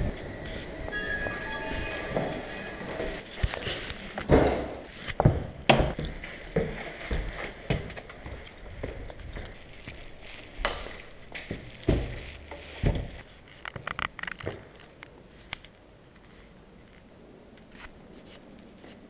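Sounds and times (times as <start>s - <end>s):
keys jingling on lanyard: 3.6s - 4.9s, 6.0s - 11.3s.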